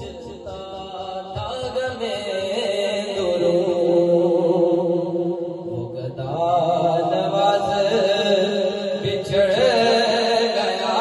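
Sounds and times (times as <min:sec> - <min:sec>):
man singing into microphone: 0:00.0 - 0:11.0.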